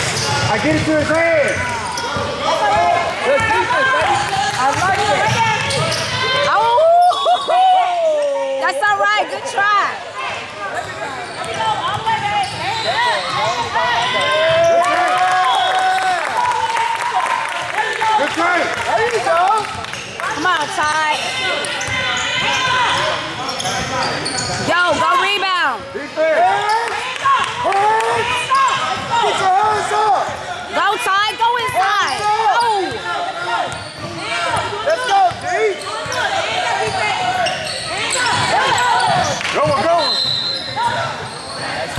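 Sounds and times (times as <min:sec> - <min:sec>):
shoes squeaking on gym floor: 0:10.6 - 0:14.8, 0:20.0 - 0:25.3, 0:31.6 - 0:41.9.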